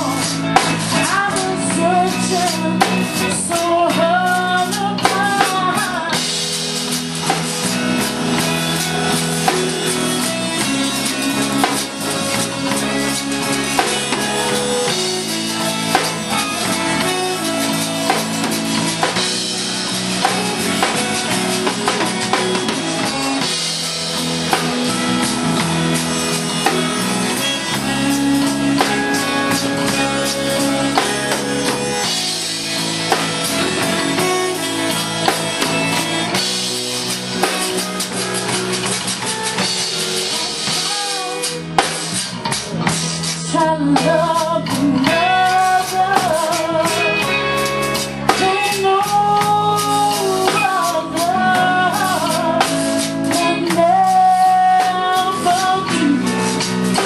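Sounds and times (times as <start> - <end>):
woman singing: 0.0 - 6.5, 43.4 - 47.6, 48.3 - 57.0
live zydeco band playing: 0.0 - 57.0
drum beat: 5.1 - 44.1.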